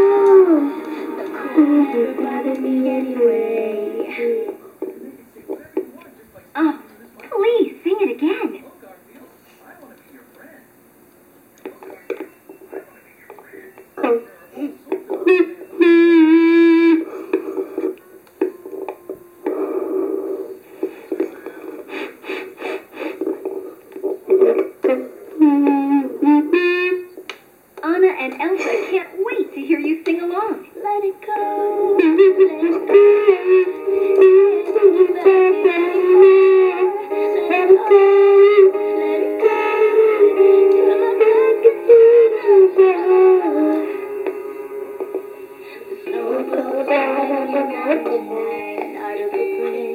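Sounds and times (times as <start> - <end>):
child singing into toy microphone: 0.0 - 4.5, 30.8 - 43.9, 46.0 - 49.9.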